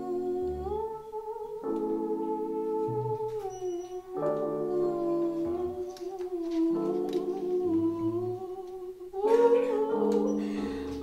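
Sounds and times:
soft low accompanying notes: 0.0 - 11.0
woman singing a long note: 0.0 - 11.0.

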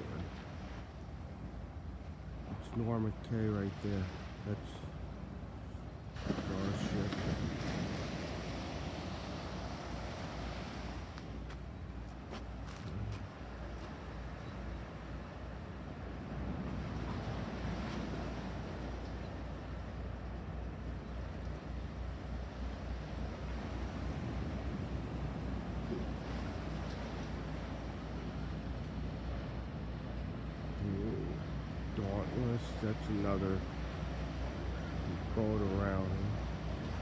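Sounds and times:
steady low rumble: 0.0 - 37.0.

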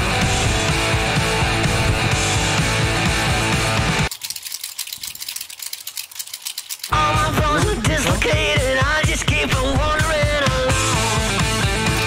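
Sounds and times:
rock music with guitar: 0.0 - 4.1, 6.9 - 12.0
mechanical tally counter clicking: 4.1 - 7.0.

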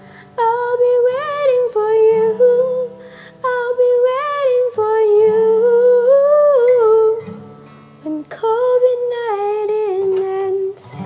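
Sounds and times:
acoustic guitar: 0.0 - 11.0
woman singing wordless melody: 0.0 - 11.0.

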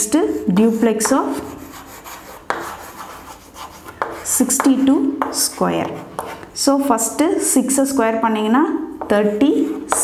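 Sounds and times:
chalk scratching on chalkboard: 0.3 - 6.5
sharp chalk tap: 1.0 - 6.5.

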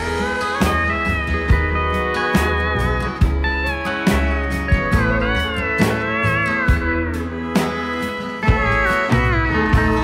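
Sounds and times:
country band playing: 0.0 - 10.0
drum hits: 0.0 - 10.0
pedal steel guitar sliding notes: 0.0 - 10.0
upright bass: 0.0 - 10.0.

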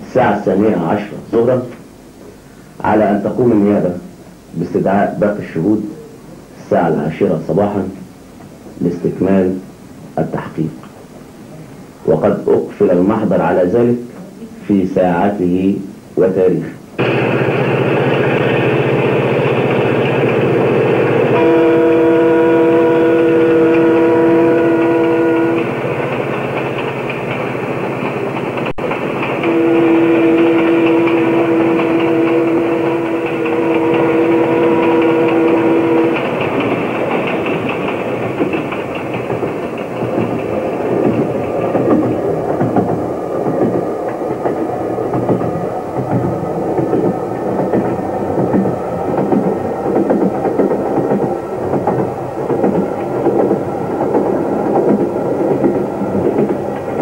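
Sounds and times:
train rumbling: 0.0 - 57.0
train horn blasts: 20.3 - 26.0, 29.4 - 36.4.

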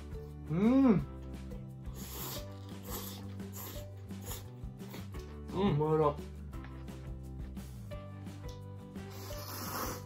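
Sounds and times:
background music: 0.0 - 10.0
noodles being slurped: 1.9 - 5.3, 9.0 - 10.0.

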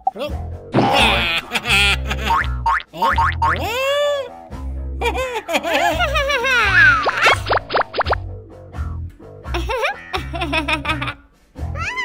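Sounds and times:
upbeat children's music: 0.0 - 12.0.

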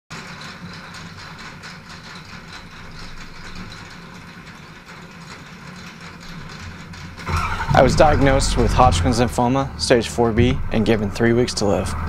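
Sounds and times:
metal slats rattling: 0.1 - 11.8
roll-up door hum: 0.1 - 12.0.

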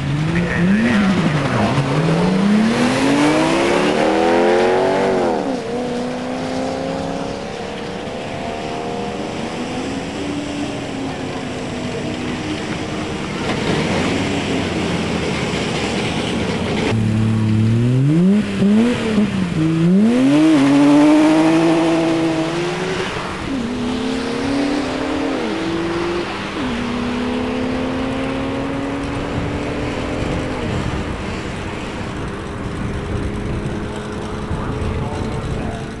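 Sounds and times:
car engine accelerating hard: 0.0 - 36.0.

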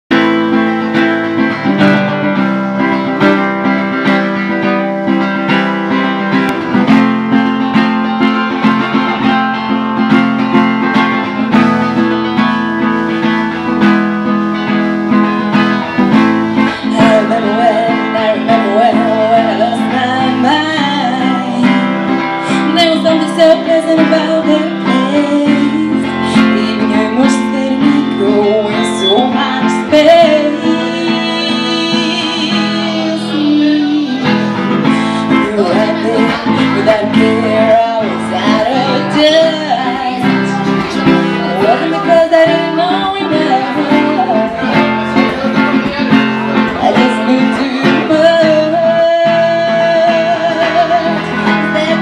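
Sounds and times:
acoustic guitar strumming: 0.1 - 52.0.

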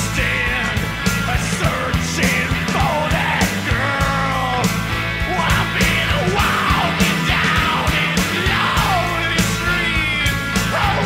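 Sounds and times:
punk blues rock music: 0.0 - 11.0
person yelling vocals: 5.3 - 11.0.

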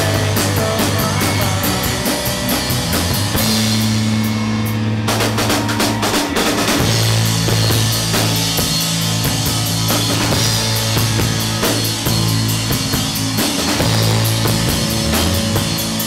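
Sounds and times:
rock band playing: 0.0 - 16.0.

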